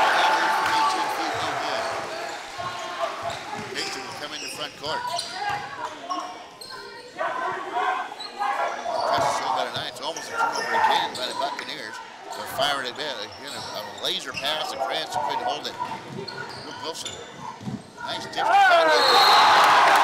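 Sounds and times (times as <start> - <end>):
voices echoing in gym: 0.0 - 19.6.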